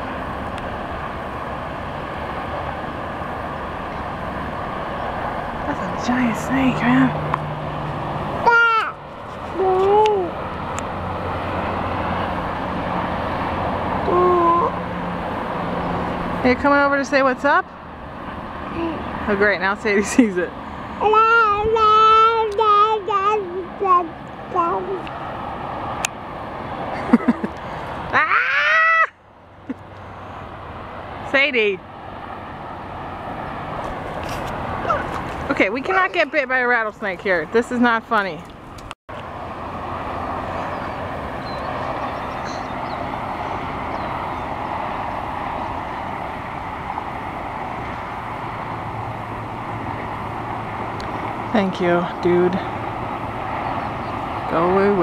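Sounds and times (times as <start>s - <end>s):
dog whining: 34.8s - 35.2s.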